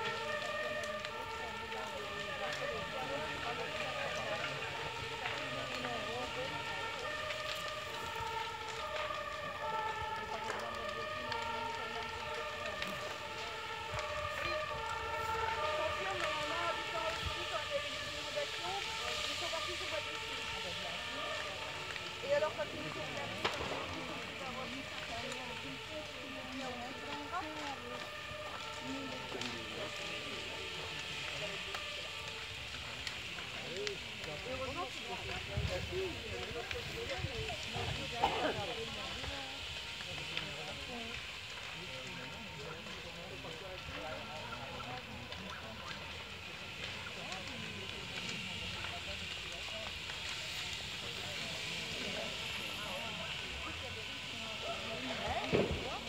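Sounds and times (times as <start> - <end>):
crackling: 0.0 - 56.0
faint voices: 0.0 - 56.0
two-tone emergency siren: 0.0 - 56.0.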